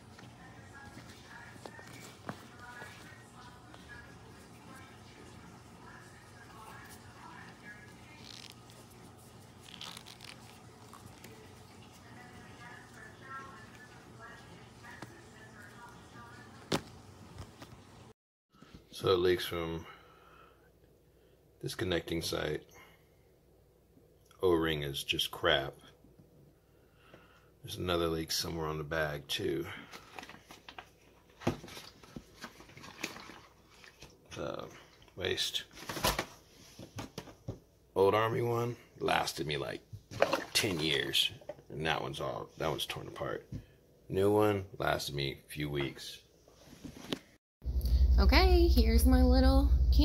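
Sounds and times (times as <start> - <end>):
plastic crinkling and rustling: 7.6 - 12.8, 29.8 - 34.2
plastic bladder handled in sink: 29.9 - 34.4, 40.1 - 41.6.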